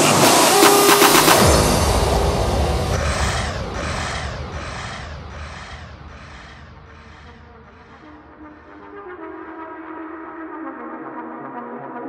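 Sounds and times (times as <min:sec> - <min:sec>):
hissing synth wash: 0:00.0 - 0:08.8
low bass: 0:01.3 - 0:08.4.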